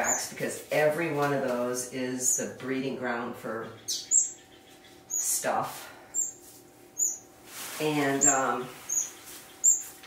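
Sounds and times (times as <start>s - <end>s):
finch chirping: 0.0s - 0.4s, 3.6s - 6.4s, 7.0s - 10.0s.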